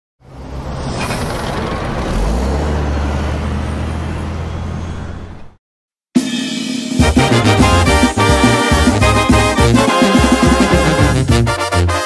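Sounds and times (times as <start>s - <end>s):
bus driving past: 0.2s - 5.6s
road and wind noise: 0.2s - 5.6s.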